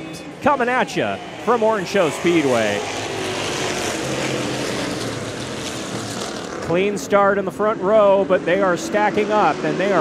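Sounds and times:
race car engines roaring: 0:00.0 - 0:10.0.

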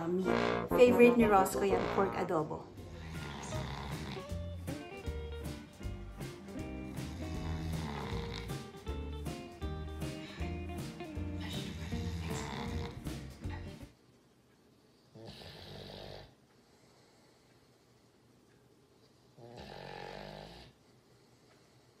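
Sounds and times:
background music: 0:00.0 - 0:13.9
dog snoring: 0:02.8 - 0:04.5, 0:06.6 - 0:08.8, 0:11.2 - 0:13.8, 0:15.1 - 0:17.3, 0:19.4 - 0:20.8.

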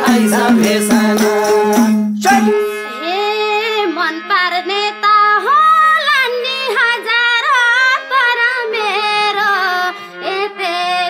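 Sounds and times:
rhythmic hand-clapping: 0:00.0 - 0:02.6
low held tone: 0:00.5 - 0:02.9
woman singing folk song: 0:02.5 - 0:11.0.

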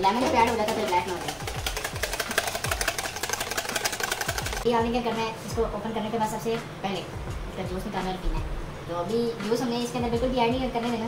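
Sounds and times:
whisk beating in plastic bowl: 0:00.0 - 0:04.7.

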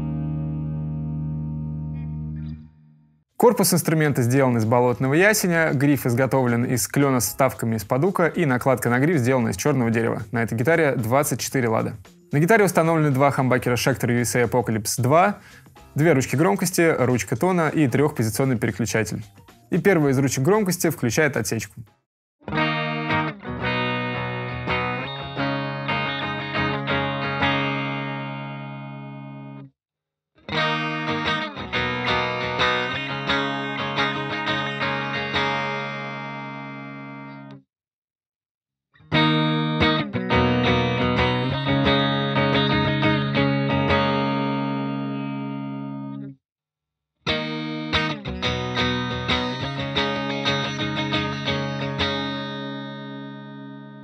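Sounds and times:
electric guitar through amp: 0:00.0 - 0:03.0, 0:22.5 - 0:29.6, 0:30.4 - 0:37.6, 0:39.1 - 0:46.3, 0:47.3 - 0:54.0.

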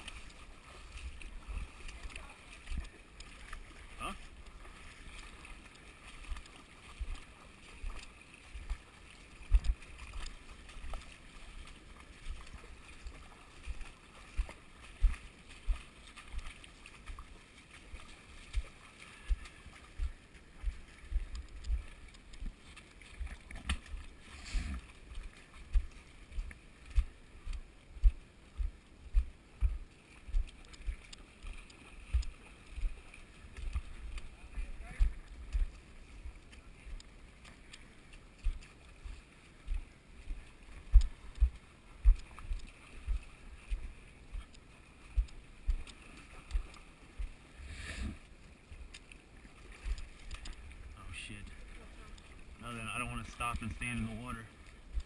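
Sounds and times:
footsteps wading through mud: 0:00.0 - 0:55.0.

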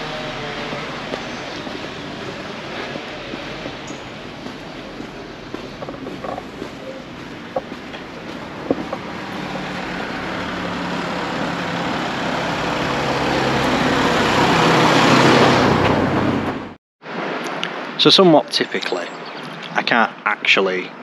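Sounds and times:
car passing by: 0:00.0 - 0:18.2.

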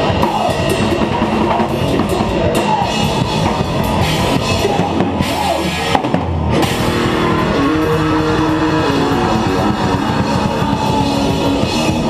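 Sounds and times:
distorted electric guitar riff: 0:00.0 - 0:12.0
fast drumming with cymbals: 0:00.0 - 0:12.0.

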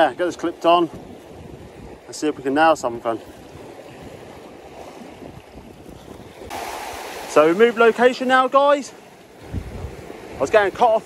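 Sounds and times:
wind on microphone: 0:00.0 - 0:07.5, 0:09.2 - 0:11.0
surf washing over rocks: 0:00.0 - 0:11.0
rush of breaking surf: 0:03.0 - 0:11.0.

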